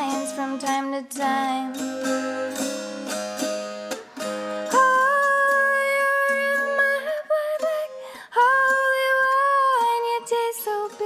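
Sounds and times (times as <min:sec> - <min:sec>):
plucked dulcimer: 0:00.0 - 0:11.0.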